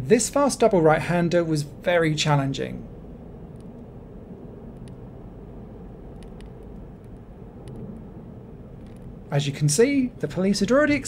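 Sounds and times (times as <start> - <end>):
car interior rumble: 0.0 - 11.0
faint light ticks: 6.2 - 8.0.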